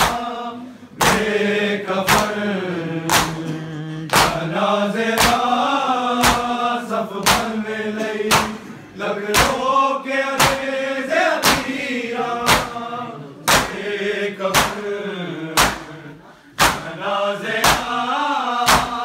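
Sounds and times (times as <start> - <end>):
chest-beating slaps: 0.0 - 0.3, 0.9 - 1.4, 2.0 - 2.4, 3.0 - 4.5, 5.2 - 5.6, 6.2 - 6.6, 7.2 - 7.6, 8.3 - 9.7, 10.4 - 10.8, 11.4 - 11.8, 12.4 - 12.8, 13.4 - 13.9, 14.5 - 14.9, 15.6 - 17.0, 17.6 - 18.0, 18.7 - 19.0
men chanting in unison: 0.0 - 19.0.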